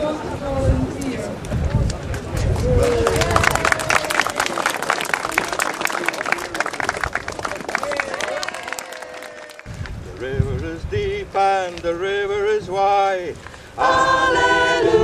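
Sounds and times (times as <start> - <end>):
crowd applauding: 2.1 - 10.0.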